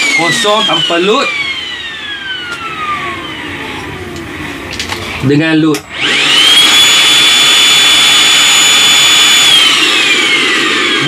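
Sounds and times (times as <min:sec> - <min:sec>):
vacuum motor winding down: 0:00.0 - 0:05.0, 0:05.9 - 0:11.0.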